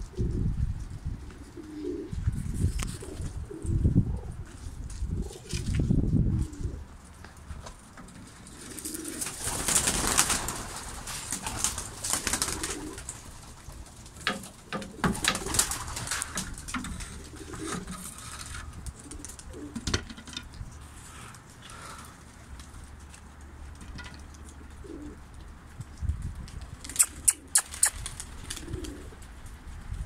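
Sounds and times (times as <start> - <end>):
pigeons cooing: 1.2 - 7.3, 8.0 - 25.6, 26.8 - 29.5
wing flutters: 8.1 - 19.8, 25.9 - 30.0.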